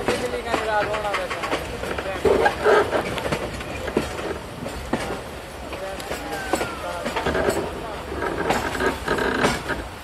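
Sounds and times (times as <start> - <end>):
train rumble: 0.0 - 10.0
wheels clacking over rail joints: 0.0 - 10.0.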